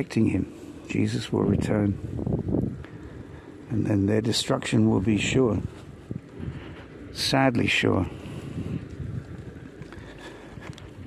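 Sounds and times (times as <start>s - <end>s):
wind noise on microphone: 0.9s - 11.0s.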